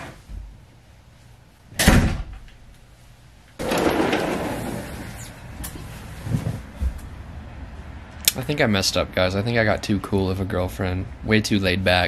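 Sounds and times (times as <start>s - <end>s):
door shutting: 3.6s - 7.0s.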